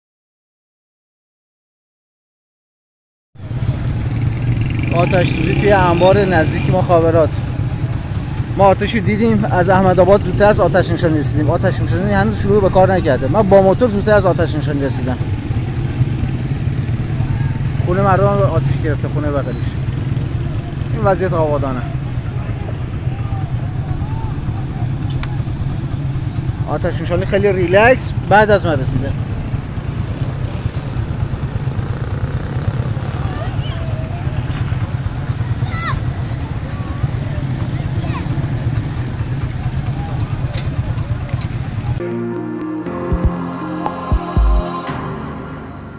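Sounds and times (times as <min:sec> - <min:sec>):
motorcycle engine idling: 0:15.0 - 0:27.5, 0:29.1 - 0:42.0
distant voices shouting: 0:21.9 - 0:26.3, 0:33.0 - 0:38.8.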